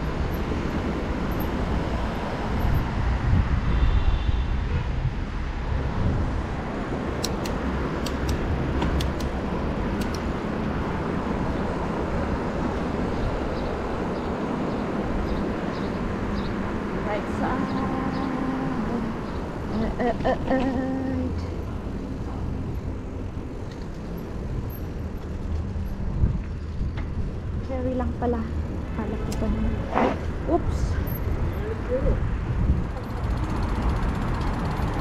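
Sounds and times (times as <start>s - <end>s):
wind noise: 0.0s - 18.1s, 18.8s - 35.0s
sharp ticks: 7.2s - 10.3s.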